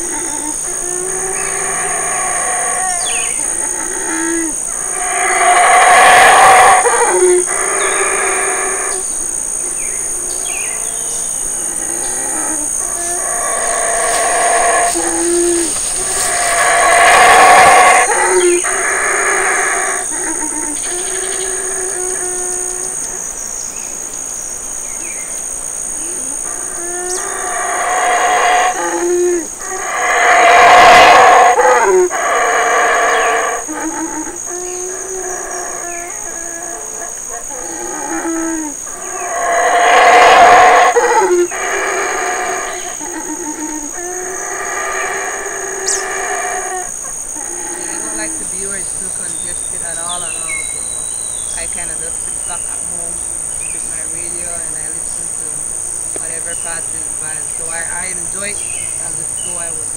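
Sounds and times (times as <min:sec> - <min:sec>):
howler monkey howling: 0:00.0 - 0:24.1, 0:25.0 - 0:59.9
steady high-pitched buzz: 0:00.0 - 0:59.9.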